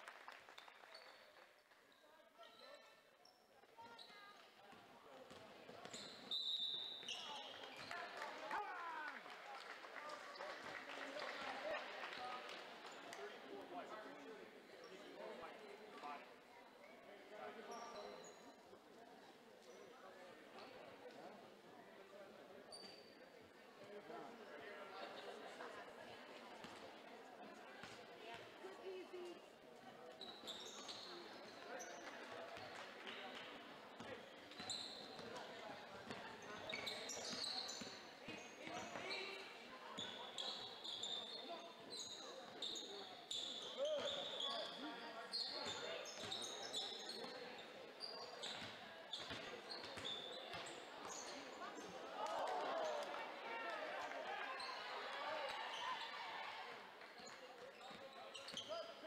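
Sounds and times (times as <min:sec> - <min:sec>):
echoing babble of voices: 0:02.0 - 0:59.0
sneaker squeaks: 0:02.7 - 0:04.4, 0:05.3 - 0:08.0, 0:22.7 - 0:23.2, 0:30.1 - 0:32.7, 0:34.5 - 0:35.5, 0:36.1 - 0:51.9, 0:57.1 - 0:59.0.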